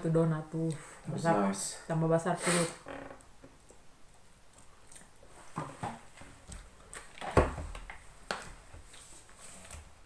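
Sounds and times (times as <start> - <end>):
person chewing: 3.6 - 5.3.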